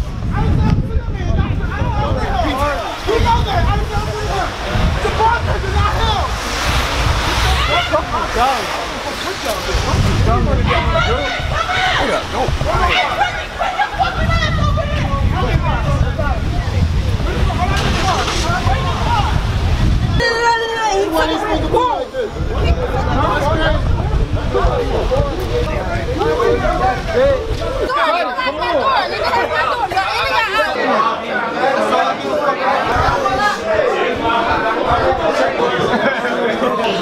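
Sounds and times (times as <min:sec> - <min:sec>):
wind rumbling on microphone: 0:00.0 - 0:30.6, 0:32.6 - 0:35.9
indistinct voices: 0:00.0 - 0:37.0
people talking over one another: 0:00.0 - 0:37.0.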